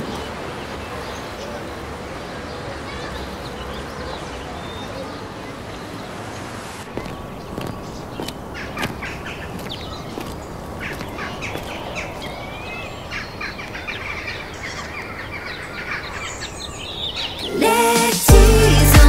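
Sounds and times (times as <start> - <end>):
birds chirping: 0.0 - 19.0
music: 17.5 - 19.0.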